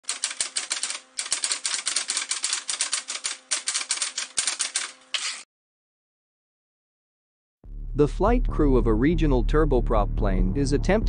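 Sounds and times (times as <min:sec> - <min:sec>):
typewriter keys striking: 0:00.0 - 0:05.4.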